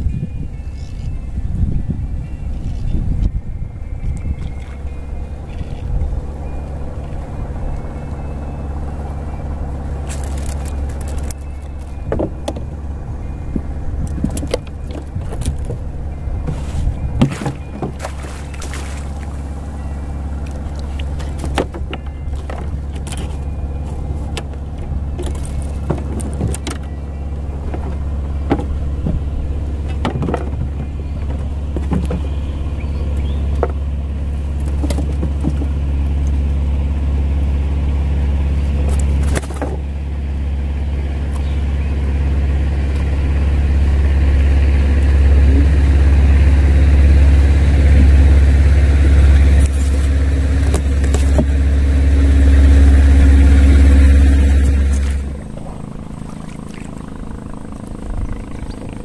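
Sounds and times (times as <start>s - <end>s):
low engine drone: 0.0s - 59.0s.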